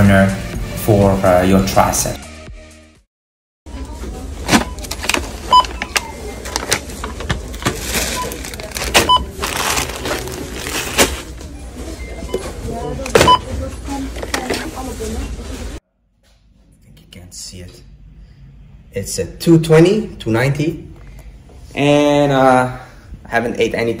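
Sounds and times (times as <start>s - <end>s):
store background noise: 3.7s - 24.0s
barcode scanner beeps: 5.5s - 6.6s, 9.0s - 9.4s, 11.9s - 13.5s.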